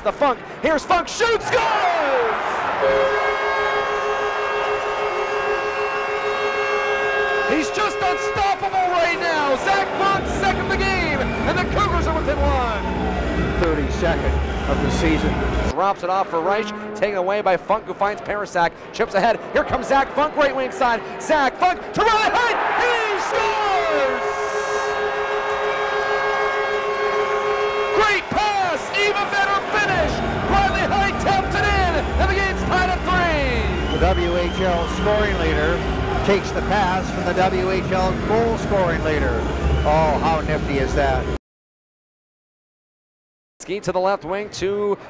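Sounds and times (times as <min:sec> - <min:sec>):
crowd cheering: 0:01.0 - 0:16.5, 0:19.0 - 0:41.4
arena goal horn two-note chord: 0:02.8 - 0:12.7, 0:16.3 - 0:17.4, 0:23.2 - 0:40.7.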